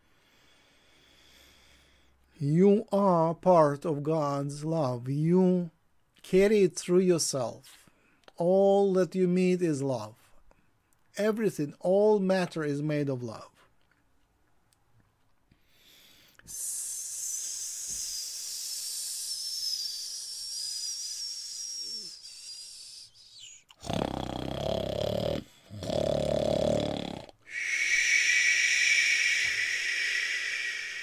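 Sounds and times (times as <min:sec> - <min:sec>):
man breathing forcefully: 0:15.6 - 0:23.5, 0:27.4 - 0:31.0.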